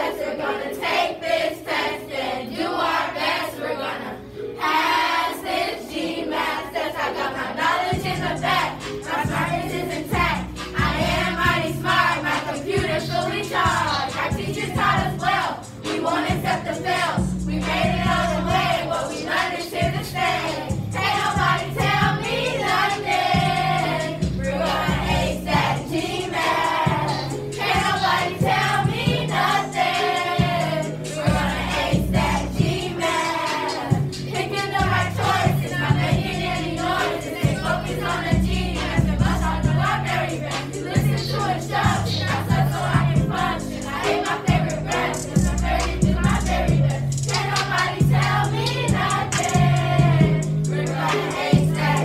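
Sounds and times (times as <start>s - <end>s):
children singing: 0.0s - 52.0s
backing track with bass and beat: 8.0s - 19.2s, 19.8s - 52.0s.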